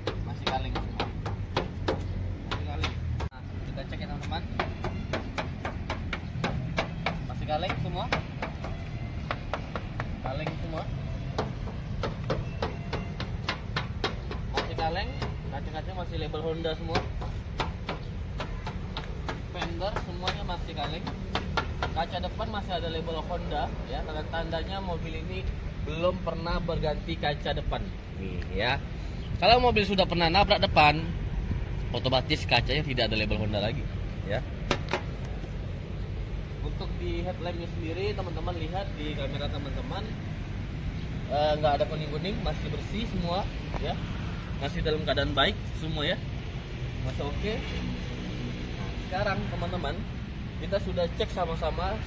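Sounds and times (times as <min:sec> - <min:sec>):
knuckles knocking on metal panels: 0:00.0 - 0:03.4, 0:04.4 - 0:15.5, 0:16.7 - 0:22.2.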